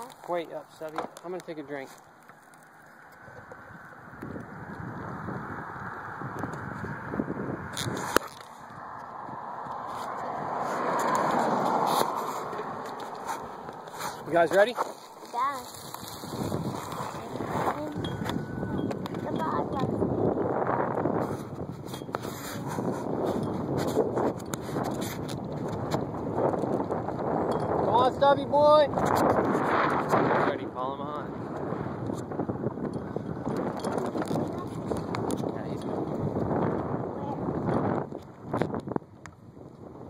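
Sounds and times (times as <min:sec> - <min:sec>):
wind on microphone: 0:03.0 - 0:40.0
bicycle clicks: 0:21.9 - 0:27.8.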